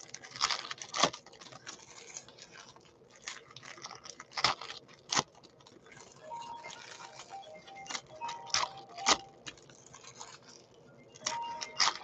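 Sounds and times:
faint background music: 0:00.0 - 0:12.0
foil wrapper crinkling and tearing: 0:00.0 - 0:12.0.

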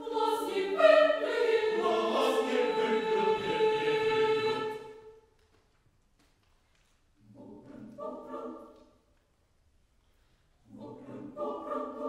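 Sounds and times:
choir singing a cappella: 0:00.0 - 0:05.2, 0:07.2 - 0:09.0, 0:10.6 - 0:12.0.

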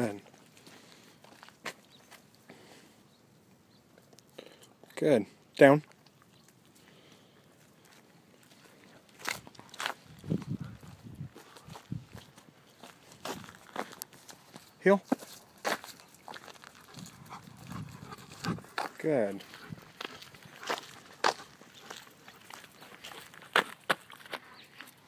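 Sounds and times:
footsteps on gravel: 0:00.0 - 0:02.3, 0:07.5 - 0:25.0.

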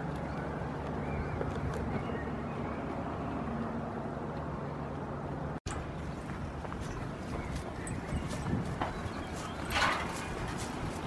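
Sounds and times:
goats chewing grass: 0:06.0 - 0:11.0.

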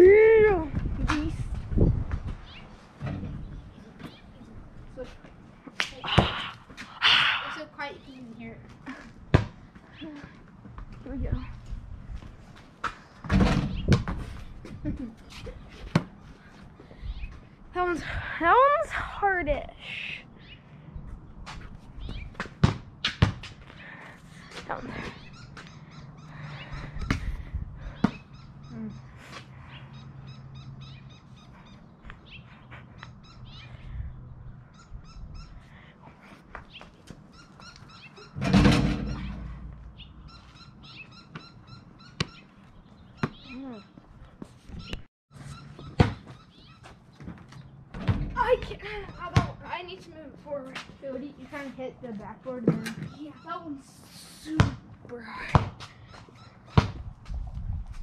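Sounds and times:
basketball bouncing on concrete: 0:09.3 - 0:09.7, 0:13.2 - 0:14.3, 0:15.9 - 0:16.2, 0:22.1 - 0:23.6, 0:27.9 - 0:28.3, 0:43.2 - 0:43.6, 0:45.8 - 0:46.4, 0:47.2 - 0:49.8, 0:54.6 - 0:56.0, 0:56.7 - 0:57.2
ball striking backboard and rim: 0:38.4 - 0:39.8, 0:45.9 - 0:46.3, 0:56.8 - 0:57.0.

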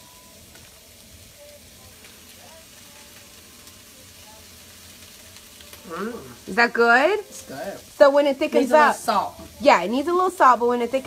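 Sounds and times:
vegetables sizzling in a frying pan: 0:00.0 - 0:11.0.

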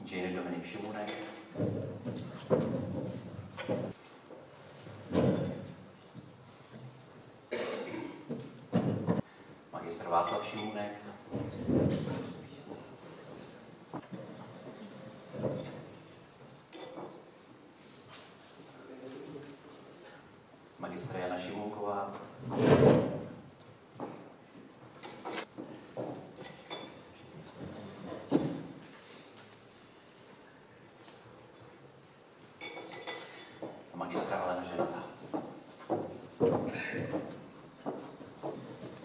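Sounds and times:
chair scraping across floor: 0:01.5 - 0:05.8, 0:11.3 - 0:16.2, 0:22.2 - 0:23.4, 0:25.0 - 0:29.2
person coughing: 0:07.5 - 0:08.3.

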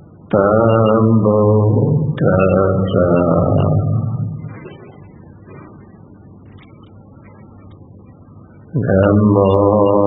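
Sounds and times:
person chanting: 0:00.3 - 0:04.4, 0:08.7 - 0:10.0.

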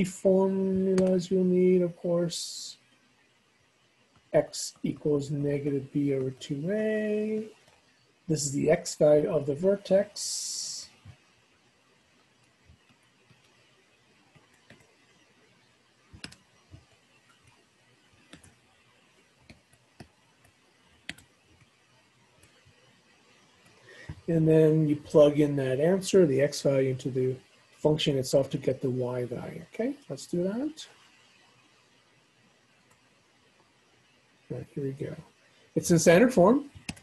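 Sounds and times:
faint steady hiss: 0:00.0 - 0:37.0.

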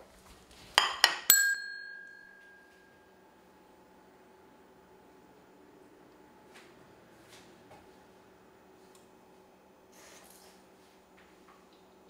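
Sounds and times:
desk service bell ringing: 0:00.8 - 0:03.2.

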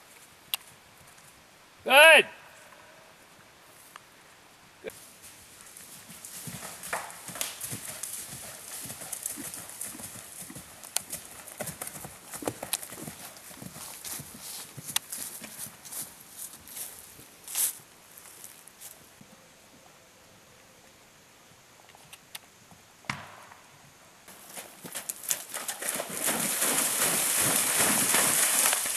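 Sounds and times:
horse hoofbeats on turf: 0:04.9 - 0:17.2, 0:24.3 - 0:28.9.

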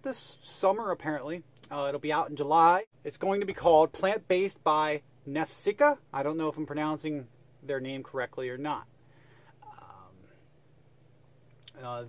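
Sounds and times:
low steady hum: 0:00.0 - 0:12.0
faint breathy sound: 0:09.0 - 0:10.6.

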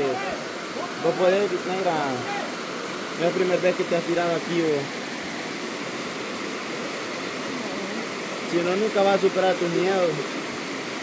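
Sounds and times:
river flowing: 0:00.0 - 0:11.0.

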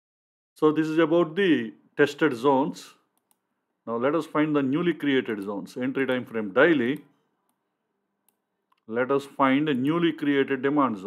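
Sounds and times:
faint computer mouse clicks: 0:03.1 - 0:03.5, 0:08.2 - 0:08.9.

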